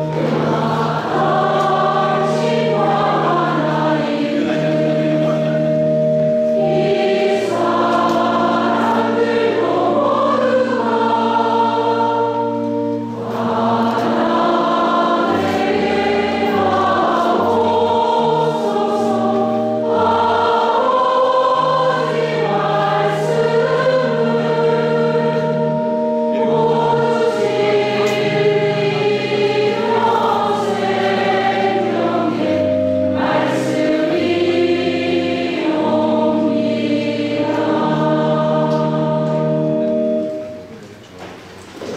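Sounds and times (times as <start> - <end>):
choir singing a hymn: 0.0 - 40.7.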